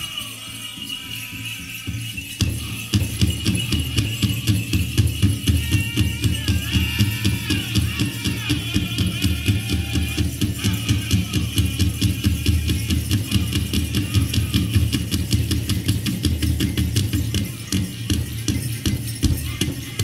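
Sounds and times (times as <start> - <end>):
high-pitched singing: 0.0 - 15.9, 16.8 - 20.0
big drum fast beat: 0.0 - 20.0.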